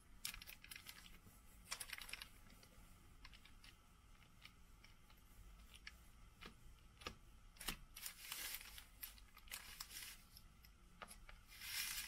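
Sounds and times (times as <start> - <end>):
foil dish crinkling: 7.6 - 10.4, 11.5 - 12.0.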